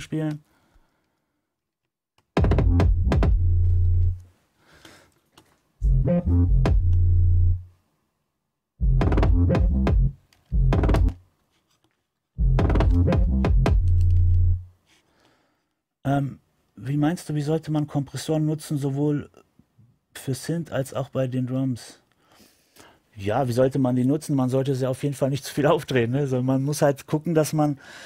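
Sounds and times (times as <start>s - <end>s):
saturated kick drum: 2.4s - 3.7s, 5.8s - 7.3s, 8.8s - 11.2s, 12.4s - 13.9s
sustained bass: 2.4s - 4.2s, 5.8s - 7.7s, 8.8s - 11.2s, 12.4s - 14.7s.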